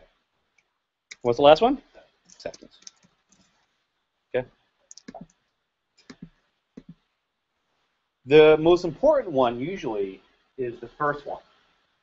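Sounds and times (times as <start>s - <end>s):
computer keyboard keystrokes: 6.0s - 7.0s.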